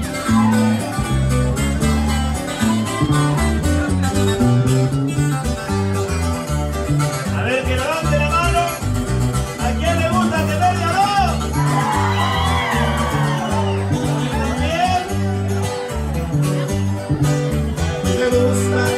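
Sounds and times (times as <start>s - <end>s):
bouncing bass line: 0.0s - 18.9s
plucked guitar lines: 0.0s - 18.9s.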